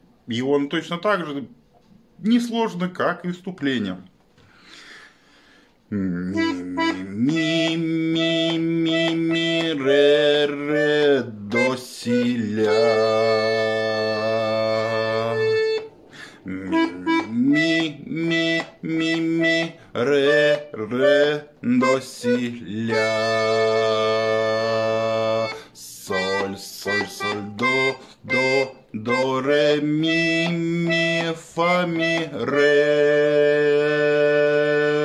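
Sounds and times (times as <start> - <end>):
button accordion melody: 6.2 - 35.0.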